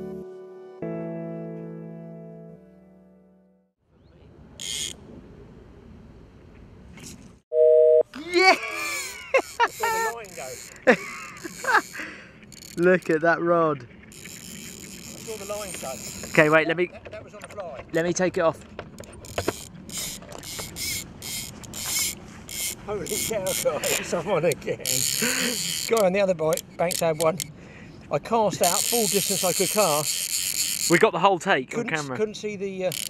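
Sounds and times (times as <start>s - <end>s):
faint outdoor background: 0.7s - 33.0s
fishing reel ratchet buzzing: 4.6s - 5.0s, 8.8s - 13.1s, 14.1s - 16.6s, 19.0s - 27.5s, 28.6s - 31.0s.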